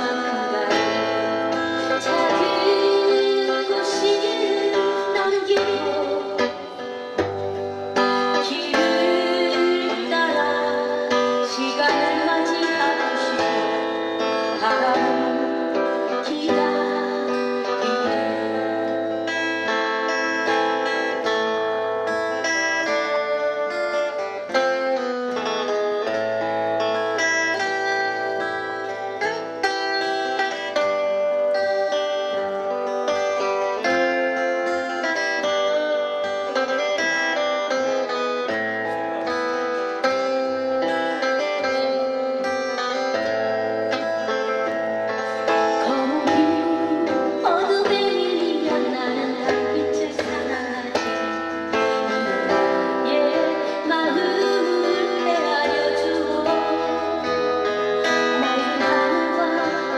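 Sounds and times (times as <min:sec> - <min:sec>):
person singing: 0:00.0 - 0:07.3, 0:08.0 - 0:21.8, 0:30.2 - 0:59.9
fingerpicked acoustic guitars: 0:00.0 - 0:59.9.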